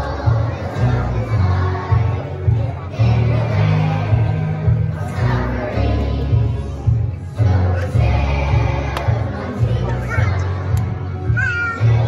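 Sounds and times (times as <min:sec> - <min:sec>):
backing track with pulsing bass: 0:00.0 - 0:12.0
children singing in a group: 0:00.0 - 0:12.0.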